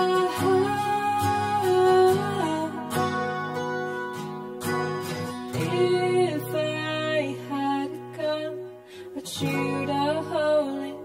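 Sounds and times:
acoustic guitar strummed: 0:00.0 - 0:11.0.

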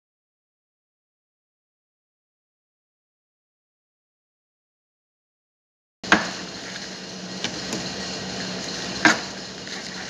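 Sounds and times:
steady low hum: 0:06.0 - 0:10.0.

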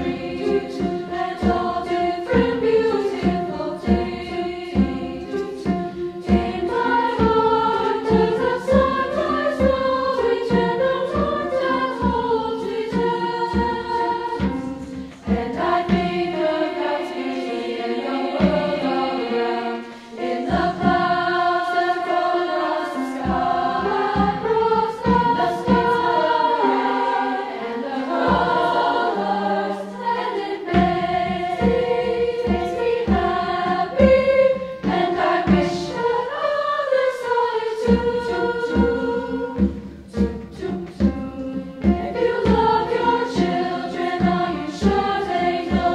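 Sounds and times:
girls' choir singing in harmony: 0:00.0 - 0:45.9
piano accompaniment: 0:00.0 - 0:45.9
singers breathing: 0:14.9 - 0:15.3, 0:19.8 - 0:20.2.

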